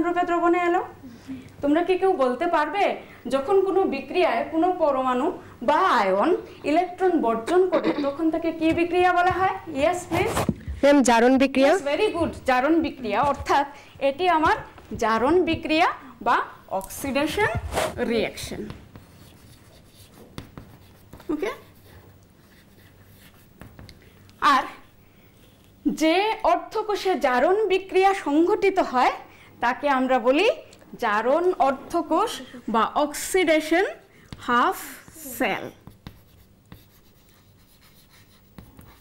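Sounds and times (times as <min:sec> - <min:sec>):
chalk tapping and scratching on chalkboard: 0:08.4 - 0:10.6, 0:11.6 - 0:13.7, 0:17.2 - 0:25.7, 0:34.3 - 0:39.0.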